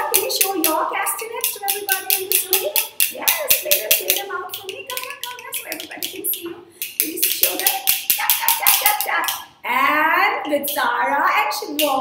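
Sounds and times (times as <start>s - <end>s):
wooden hand clappers clacking: 0.0s - 9.5s, 10.6s - 10.9s, 11.6s - 12.0s
voices: 0.0s - 12.0s.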